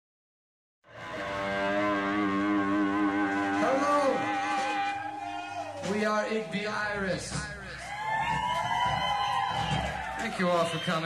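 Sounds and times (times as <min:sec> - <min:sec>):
electric guitar feedback: 0:00.9 - 0:05.8.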